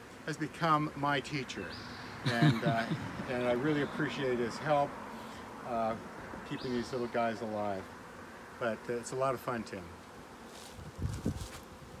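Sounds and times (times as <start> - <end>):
bees buzzing: 0.0 - 12.0.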